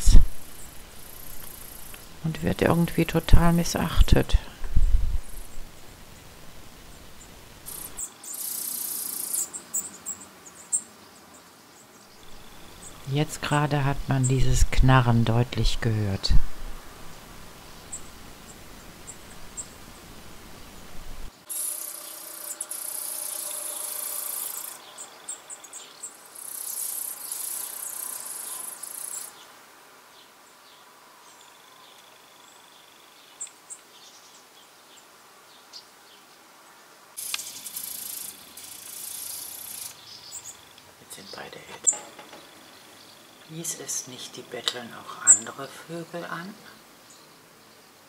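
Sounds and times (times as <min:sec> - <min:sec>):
nestlings hissing begging calls: 0:07.7 - 0:10.8, 0:21.4 - 0:29.4, 0:37.2 - 0:45.7.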